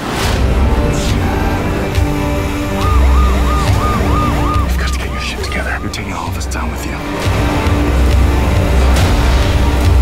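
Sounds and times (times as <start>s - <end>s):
trailer music with bass drone: 0.0s - 10.0s
police siren yelping: 2.8s - 6.5s.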